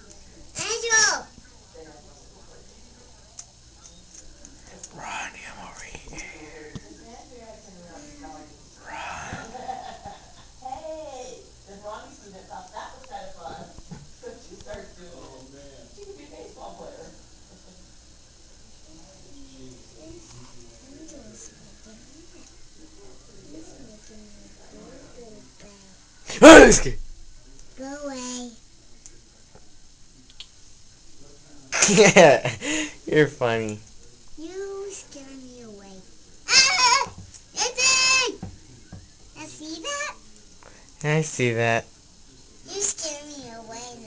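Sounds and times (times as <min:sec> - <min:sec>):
person whispering: 0:04.9 - 0:06.4.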